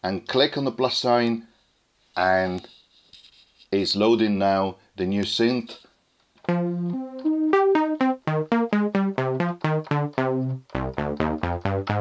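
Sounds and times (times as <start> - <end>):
synthesizer sustained notes: 6.5 - 12.0.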